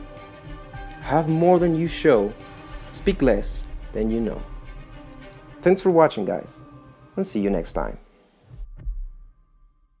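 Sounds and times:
low dull thumps: 2.3s - 5.7s, 8.5s - 9.4s.

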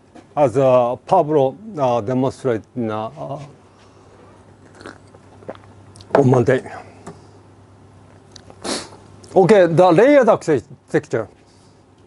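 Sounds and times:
man sipping and swallowing water: 4.6s - 6.1s.

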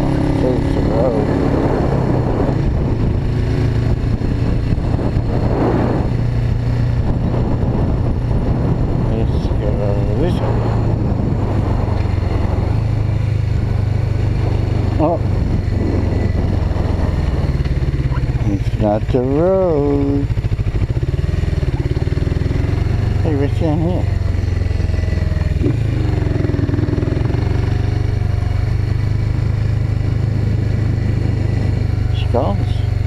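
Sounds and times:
motorcycle engine running: 0.0s - 33.0s
wind noise: 0.0s - 33.0s.

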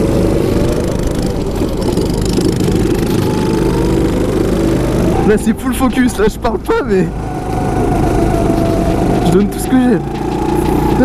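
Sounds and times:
go-kart engine running: 0.0s - 11.0s
wind and track noise: 0.0s - 11.0s.

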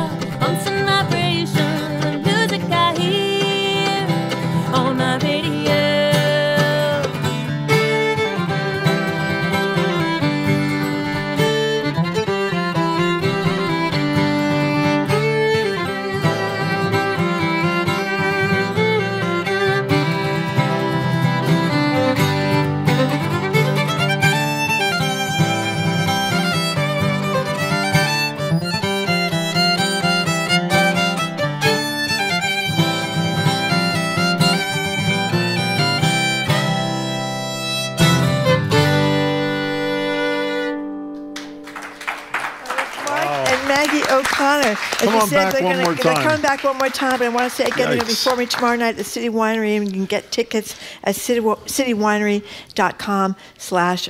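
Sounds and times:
fiddle playing melody: 0.0s - 41.8s, 43.2s - 49.5s
acoustic guitar accompaniment: 0.0s - 52.9s.

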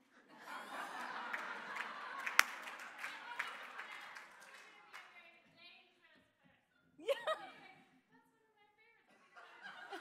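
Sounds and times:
audience applauding and cheering: 0.5s - 5.1s.

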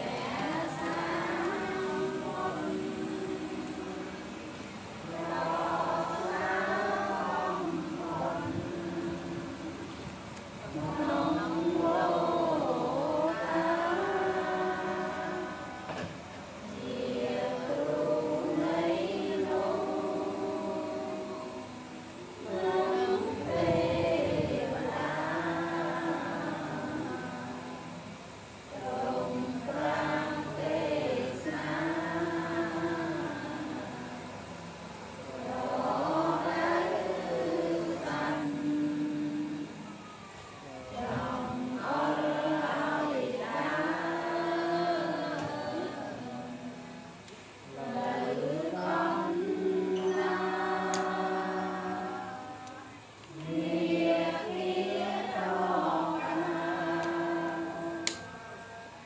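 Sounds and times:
group of voices chanting: 10.6s - 58.7s.

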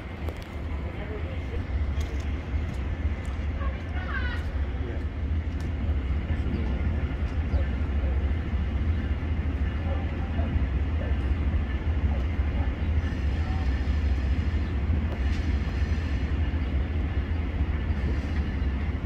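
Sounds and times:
train rumbling: 0.0s - 19.0s.

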